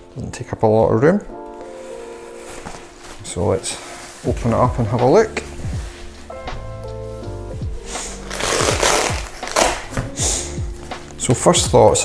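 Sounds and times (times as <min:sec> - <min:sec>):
music with held notes: 0:01.2 - 0:12.0
fabric case rustling open: 0:01.5 - 0:07.2, 0:08.1 - 0:10.1.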